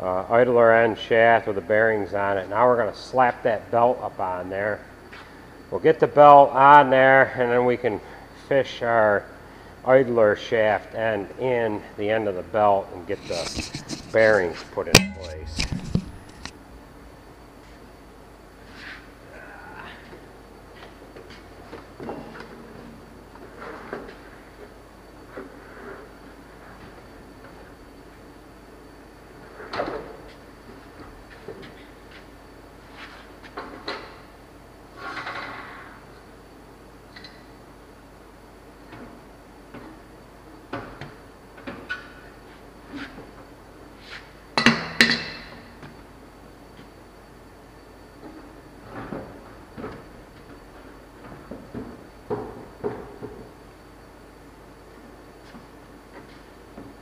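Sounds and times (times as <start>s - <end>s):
ringing metal bangs: 14.9s - 15.6s.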